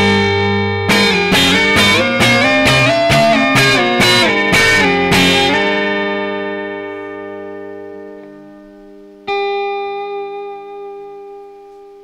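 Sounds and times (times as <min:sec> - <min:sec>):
electric guitar chord ringing: 0:00.0 - 0:12.0.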